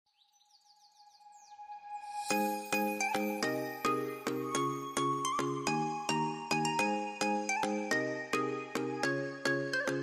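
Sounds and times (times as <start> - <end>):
bird chirps in music: 0.1 - 10.0.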